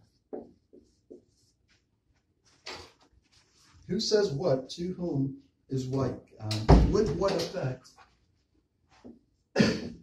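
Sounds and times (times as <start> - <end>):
marker writing on whiteboard: 0.0 - 3.7.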